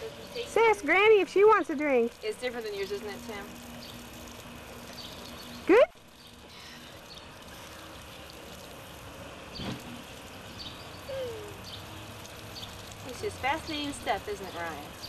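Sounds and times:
garden hose spray hissing: 0.0 - 15.0.

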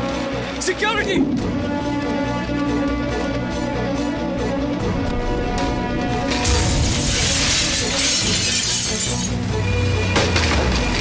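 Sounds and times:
dramatic film music: 0.0 - 11.0
glass shattering: 6.3 - 9.4.

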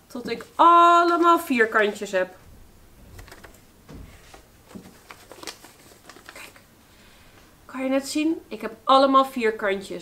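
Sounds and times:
paper crackling and rustling: 3.0 - 6.7.

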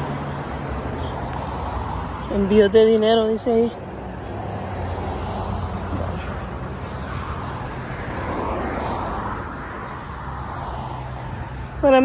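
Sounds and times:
traffic rumble: 0.0 - 12.0.

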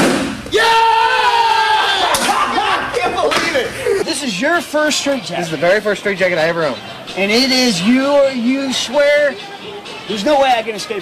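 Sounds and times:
man shouting: 0.5 - 3.3.

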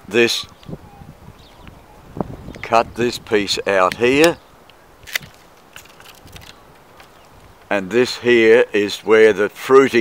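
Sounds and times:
pruning shears snipping branch: 5.0 - 7.2.

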